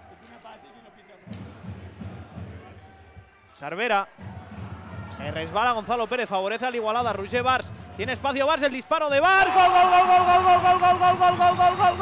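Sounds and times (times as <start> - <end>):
indistinct voices in hall: 0.0 - 5.2.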